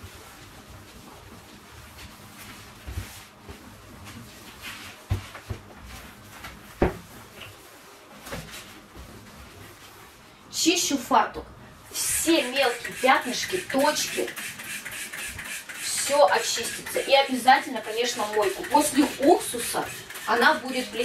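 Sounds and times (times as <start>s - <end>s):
cloth rubbing cabinet doors: 0.0s - 10.2s.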